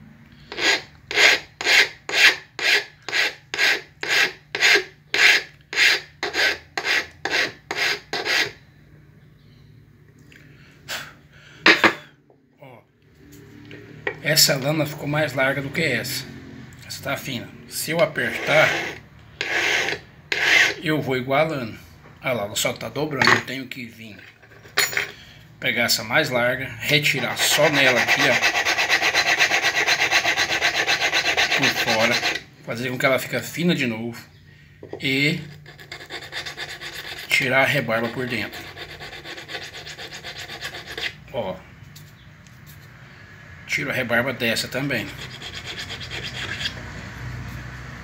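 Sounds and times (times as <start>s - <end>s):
hand file rasping on metal: 0.5s - 8.6s, 18.2s - 20.8s, 27.2s - 32.5s, 35.4s - 41.2s, 44.8s - 46.8s.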